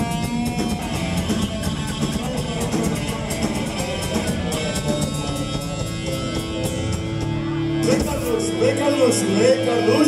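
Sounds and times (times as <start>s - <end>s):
drums and cymbals: 0.0s - 8.6s
electric guitar: 0.0s - 10.0s.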